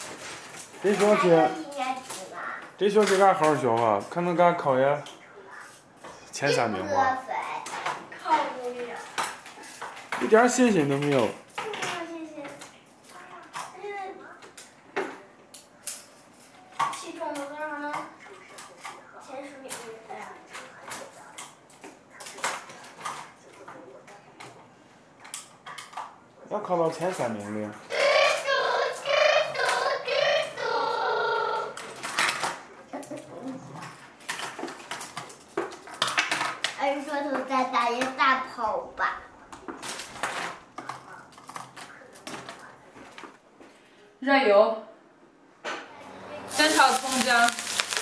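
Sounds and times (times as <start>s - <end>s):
plastic tiles clattering: 46.5s - 48.0s.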